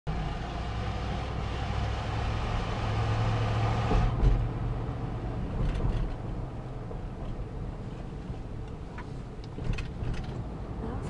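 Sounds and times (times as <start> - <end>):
low engine hum inside vehicle: 0.1 - 11.0.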